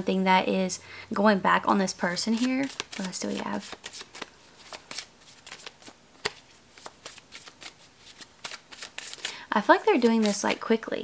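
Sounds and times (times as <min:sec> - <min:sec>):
cards being shuffled: 0:02.0 - 0:09.4, 0:10.0 - 0:10.7.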